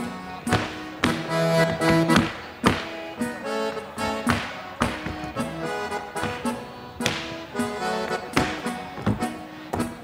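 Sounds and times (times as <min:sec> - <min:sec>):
accordion music: 0:00.0 - 0:10.0
boots stamping on stage floor: 0:00.4 - 0:03.0, 0:06.2 - 0:07.4, 0:08.3 - 0:10.0.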